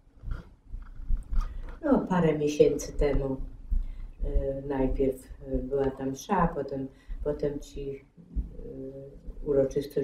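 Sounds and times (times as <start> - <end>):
faint low rumbles: 0.0 - 10.0
woman speaking: 1.8 - 3.6, 4.2 - 10.0
breathing: 3.7 - 4.2, 6.9 - 7.3.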